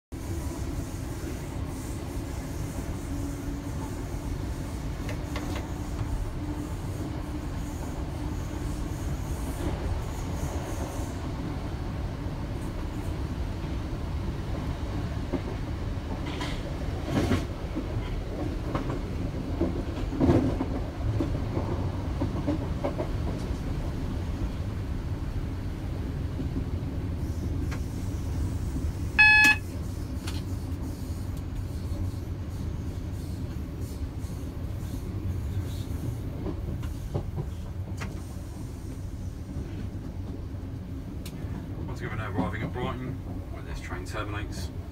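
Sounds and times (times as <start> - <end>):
train wheels rumbling on rail: 0.1 - 44.9
short pitched beep: 29.2 - 29.6.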